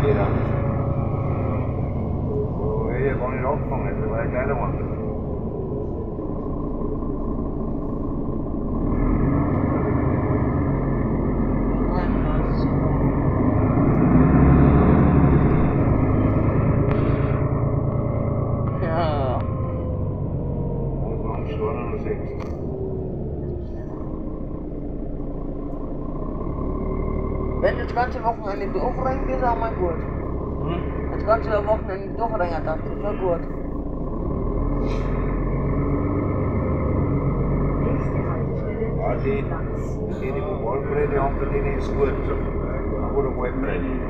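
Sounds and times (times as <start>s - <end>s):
bus engine and road rumble: 0.0s - 44.0s
faint whine: 0.0s - 44.0s.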